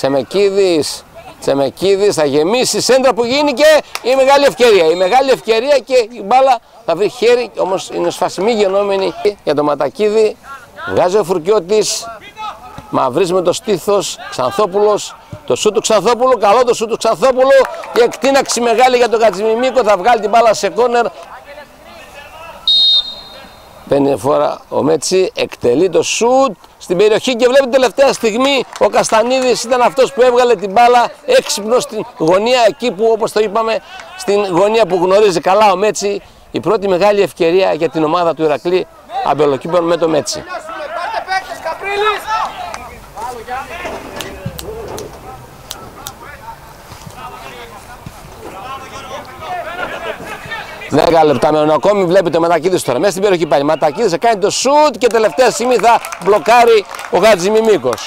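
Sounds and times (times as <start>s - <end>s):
people calling out and talking: 0.0s - 58.0s
referee's whistle blast: 22.6s - 23.8s.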